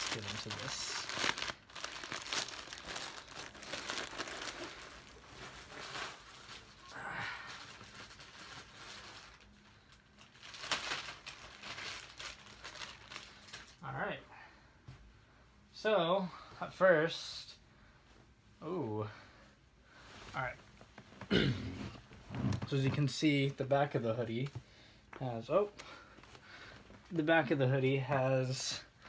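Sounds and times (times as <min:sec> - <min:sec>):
wrapping tearing: 0:00.0 - 0:13.8
wrapping crinkling and rustling: 0:00.0 - 0:14.0.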